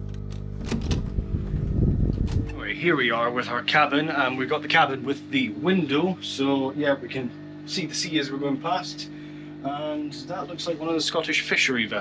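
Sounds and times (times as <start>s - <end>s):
door lock clicks: 0.2s - 1.1s
door handling thumps: 0.6s - 2.6s.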